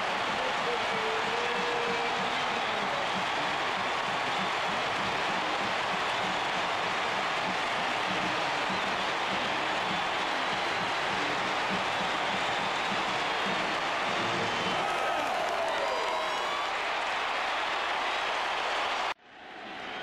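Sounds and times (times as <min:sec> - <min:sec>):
stadium crowd cheering: 0:00.0 - 0:20.0.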